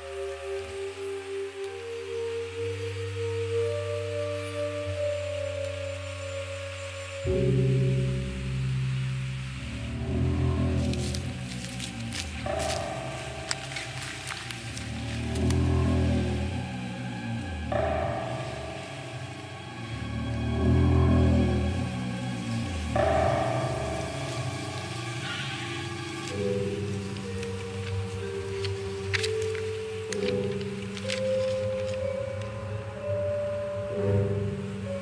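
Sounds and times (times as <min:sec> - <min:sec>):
ambient film score music: 0:00.0 - 0:35.0.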